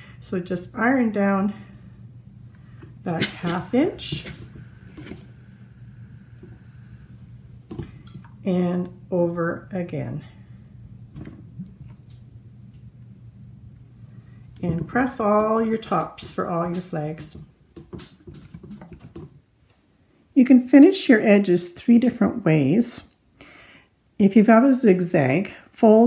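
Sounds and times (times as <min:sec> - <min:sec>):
low steady hum: 0:00.0 - 0:17.8
iron sliding over fabric: 0:03.1 - 0:07.6.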